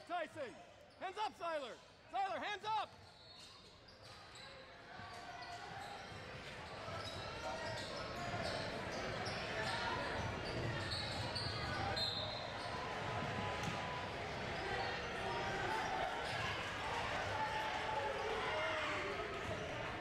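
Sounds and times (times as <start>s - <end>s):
shoes squeaking: 3.0s - 13.0s
chatter of people: 3.4s - 20.0s.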